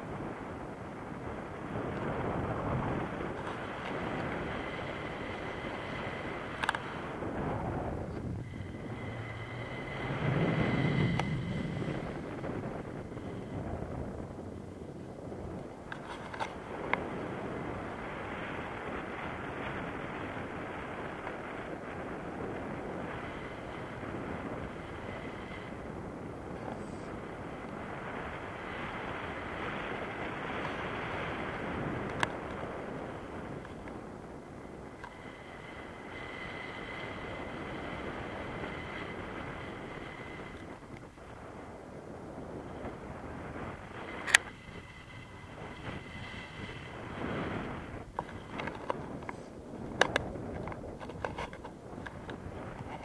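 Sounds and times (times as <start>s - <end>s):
wind rushing over microphone: 0.0s - 53.0s
small clicks: 6.6s - 6.9s.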